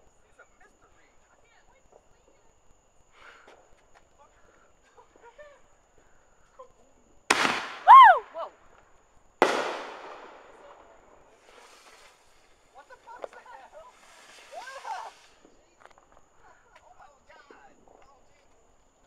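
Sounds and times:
firework bangs echoing: 0:07.3 - 0:08.3, 0:09.4 - 0:11.8.

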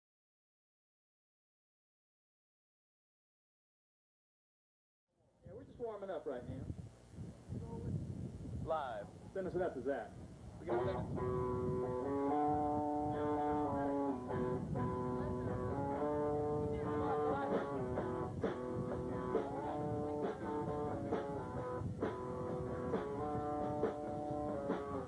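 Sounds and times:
electric guitar chords: 0:10.7 - 0:25.0.

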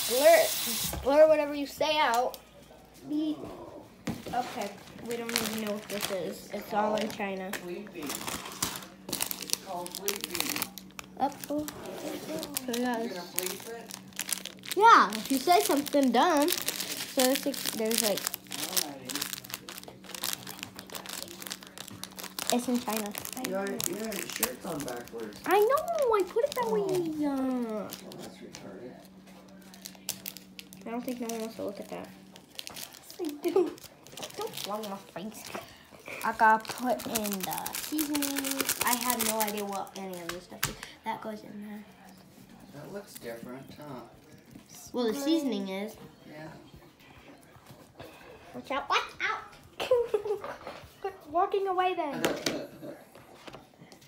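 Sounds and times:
plastic sachet crinkling: 0:04.6 - 0:40.8.

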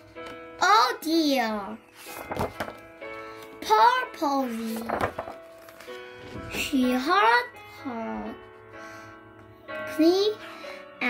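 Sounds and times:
soft background music: 0:00.0 - 0:11.0
child reading aloud: 0:00.6 - 0:01.9, 0:03.6 - 0:05.2, 0:06.5 - 0:08.4, 0:09.8 - 0:10.4
paper page turning: 0:01.9 - 0:03.6, 0:04.4 - 0:07.1.

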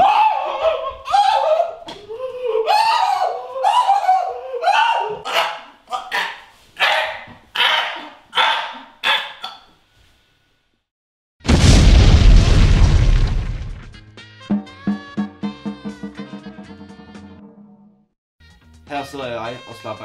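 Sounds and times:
loud explosion: 0:11.4 - 0:14.0.

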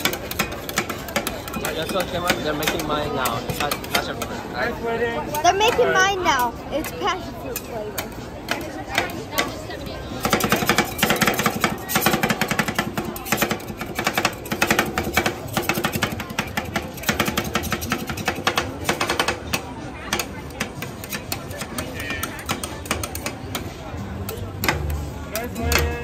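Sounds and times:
metal spatulas chopping on steel: 0:00.0 - 0:04.4, 0:07.5 - 0:26.0.

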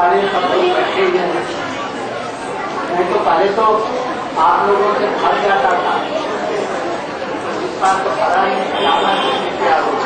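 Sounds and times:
voices chattering in large hall: 0:00.0 - 0:10.0.

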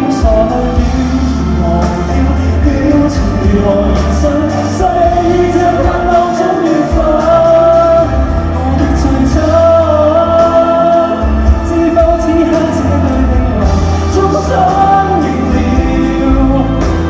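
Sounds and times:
man singing long notes: 0:00.0 - 0:17.0
pop ballad band: 0:00.0 - 0:17.0.

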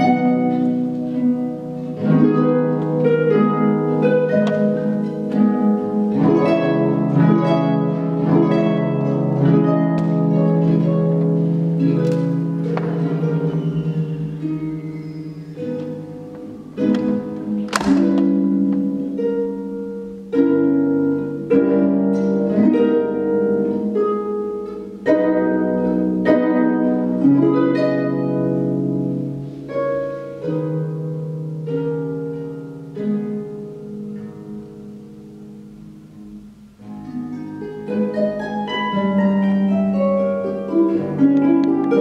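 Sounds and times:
harp notes plucked: 0:00.0 - 0:42.0.

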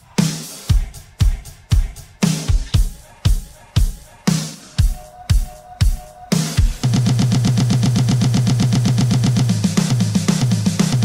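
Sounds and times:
stuttering music loop: 0:00.0 - 0:11.0.

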